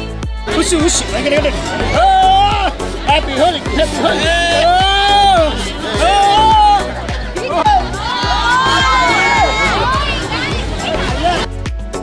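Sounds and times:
dance music with steady beat: 0:00.0 - 0:12.0
crowd shouting: 0:00.3 - 0:11.5.

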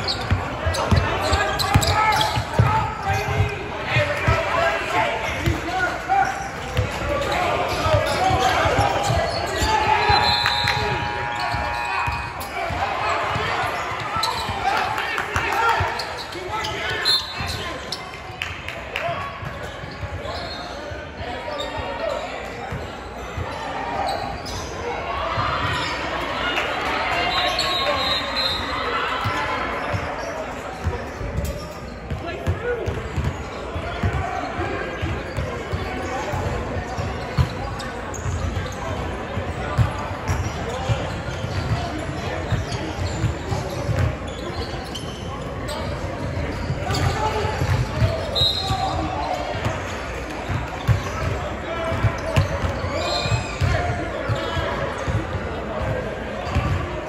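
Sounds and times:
echoing chatter and calls: 0:00.0 - 0:57.0.

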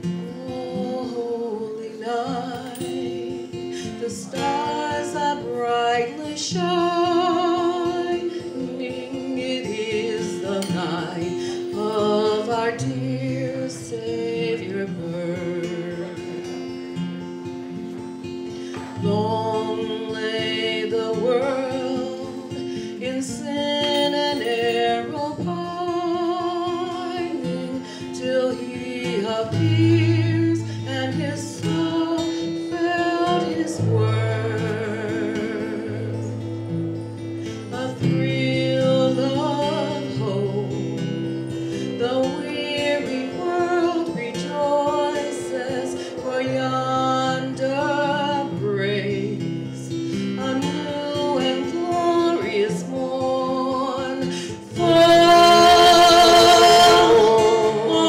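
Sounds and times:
acoustic guitar: 0:00.0 - 0:58.0
woman singing: 0:00.0 - 0:58.0.

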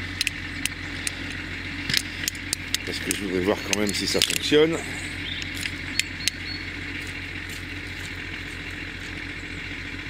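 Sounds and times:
car engine idling: 0:00.0 - 0:10.0
light clicks and rattles: 0:01.9 - 0:04.6.

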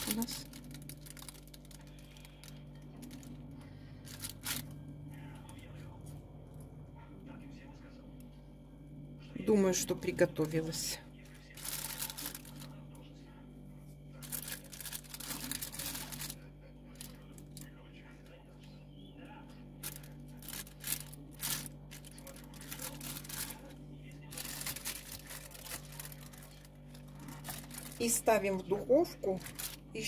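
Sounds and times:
plastic bag crinkling: 0:00.0 - 0:04.8, 0:10.0 - 0:12.8, 0:14.2 - 0:17.7, 0:19.8 - 0:30.0.

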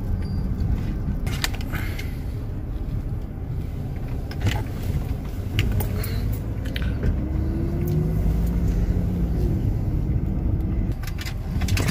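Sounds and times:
car engine and tyres rumbling: 0:00.0 - 0:11.9.

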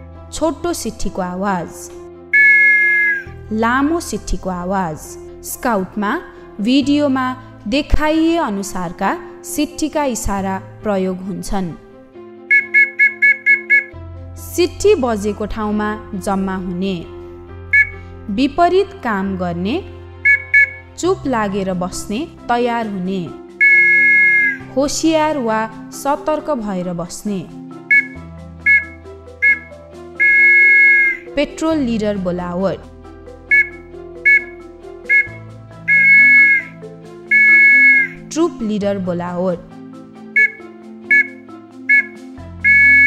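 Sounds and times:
background music: 0:00.0 - 0:43.0
short whistle blasts: 0:02.4 - 0:03.4, 0:12.5 - 0:13.9, 0:17.7 - 0:18.1, 0:20.2 - 0:21.0, 0:23.6 - 0:24.7, 0:27.9 - 0:31.3, 0:33.5 - 0:38.2, 0:40.4 - 0:43.0.

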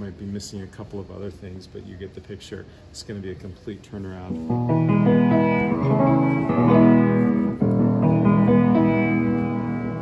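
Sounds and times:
piano chords: 0:04.3 - 0:10.0.

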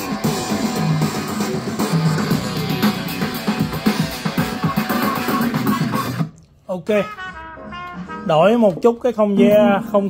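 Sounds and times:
guitar and drums music on speakers: 0:00.0 - 0:06.3.

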